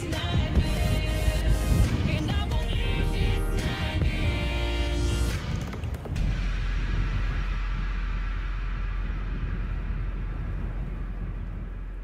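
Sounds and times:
wind buffeting microphone: 0.0 - 4.6, 5.3 - 12.0.

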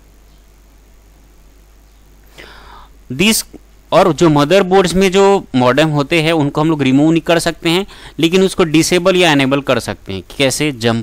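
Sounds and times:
soft breath: 2.3 - 3.0, 7.9 - 8.2
person speaking: 2.3 - 11.0.

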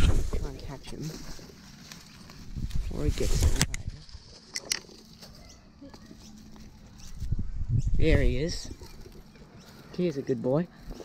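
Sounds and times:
muffled microphone handling noise: 0.0 - 1.4, 2.5 - 4.3.

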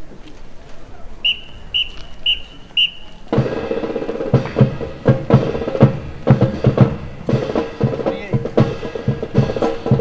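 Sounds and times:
short shrill whistle blasts: 1.2 - 3.1.

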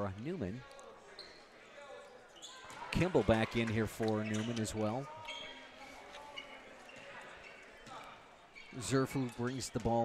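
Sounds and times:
low crowd chatter: 0.0 - 10.0.

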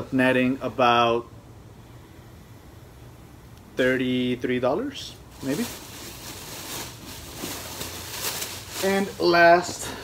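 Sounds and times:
fabric rustling: 5.3 - 9.7.

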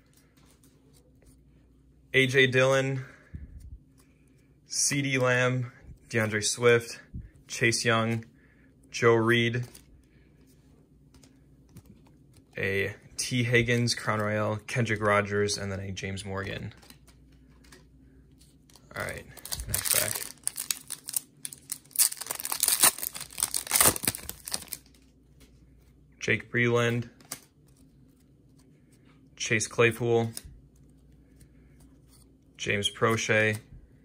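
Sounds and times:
foil wrapper tearing and crinkling: 19.4 - 24.9.

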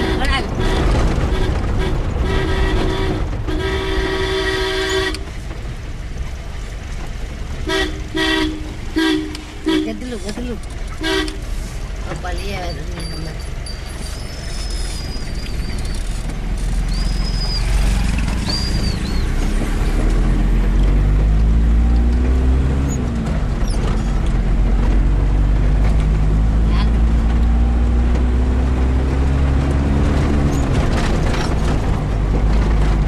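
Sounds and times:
vehicle engine rumbling: 0.0 - 33.0
high whistling calls: 12.7 - 16.1, 16.8 - 19.5.

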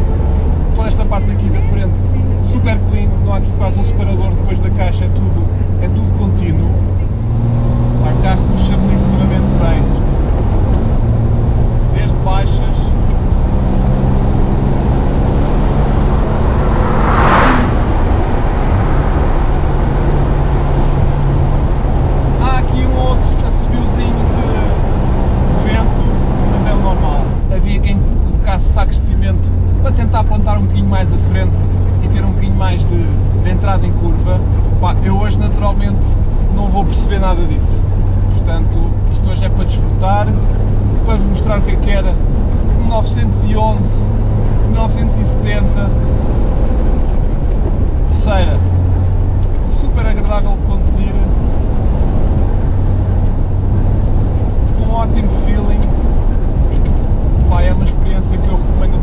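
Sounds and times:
car engine running: 0.0 - 59.0
brief whoosh: 12.9 - 21.7.

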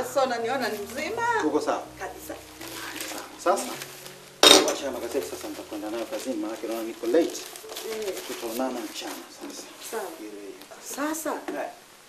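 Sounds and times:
teacup clinking on table: 4.4 - 4.8.

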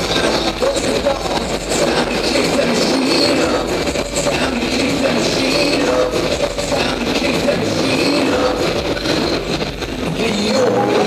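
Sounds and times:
motorcycle engines revving: 0.0 - 11.0.

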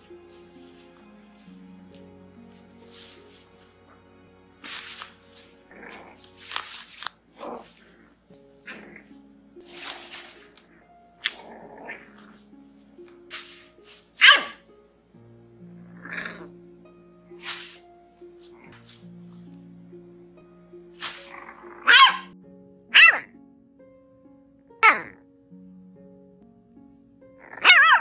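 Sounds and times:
bubble wrap rustling: 0.0 - 9.0, 9.6 - 14.2, 17.3 - 19.4, 20.9 - 21.6
background music: 0.0 - 28.0
puppy yapping and barking: 14.2 - 14.6, 21.7 - 23.3, 27.5 - 28.0.

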